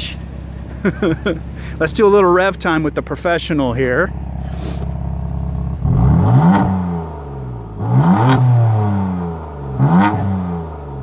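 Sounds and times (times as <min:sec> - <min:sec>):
car engine idling and revving: 0:00.0 - 0:11.0.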